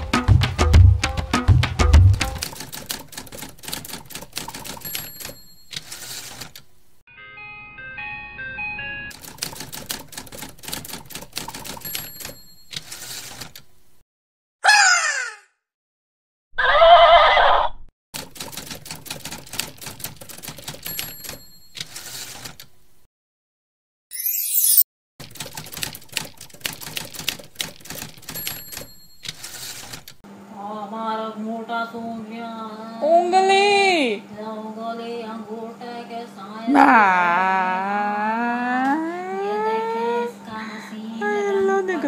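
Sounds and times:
typewriter key clacks: 2.2 - 6.6, 9.1 - 13.7, 18.2 - 22.7, 25.2 - 30.2
faint high ring: 7.1 - 9.1
tinkling melody: 7.1 - 9.1.

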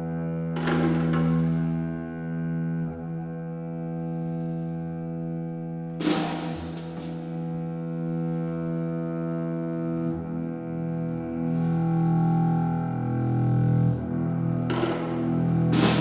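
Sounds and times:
bowed strings sustained notes: 0.0 - 16.0
drum kit crash: 15.7 - 16.0.

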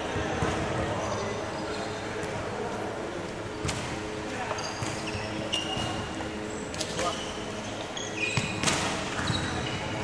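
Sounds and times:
shoe squeaks on wooden floor: 6.9 - 10.0.

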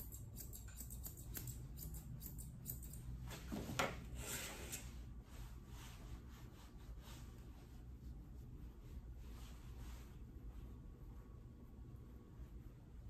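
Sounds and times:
shears snipping fur: 0.0 - 3.1
rustle of hands against fur: 4.8 - 13.0.

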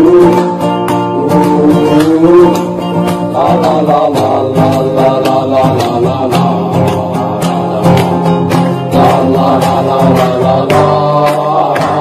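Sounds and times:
percussion strikes: 0.0 - 12.0
plucked string instrument: 0.0 - 12.0.

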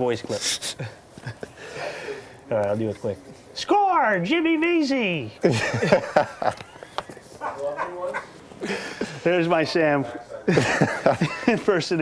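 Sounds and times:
men giggling: 0.4 - 2.4, 5.4 - 7.4, 8.5 - 9.4, 10.4 - 12.0.

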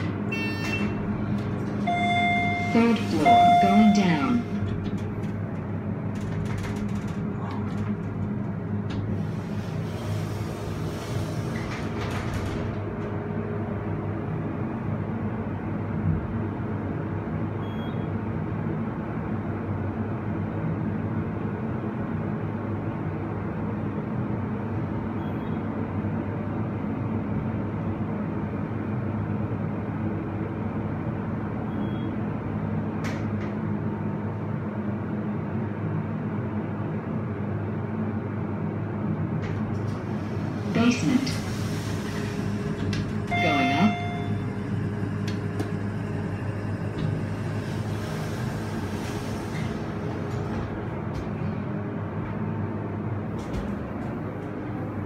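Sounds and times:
elevator hum and rumble: 0.0 - 55.0.

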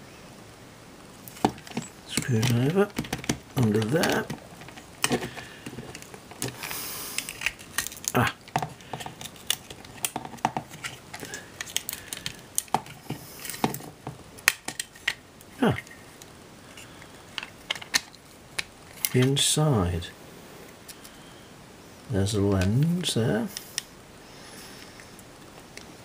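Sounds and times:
small clicks of plastic parts: 17.4 - 19.3.

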